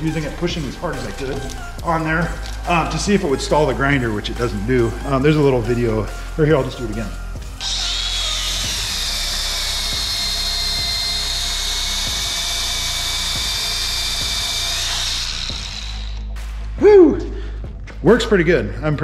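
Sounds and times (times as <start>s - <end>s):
sanding belt hiss: 7.6s - 16.2s
power tool high whine: 7.6s - 16.3s.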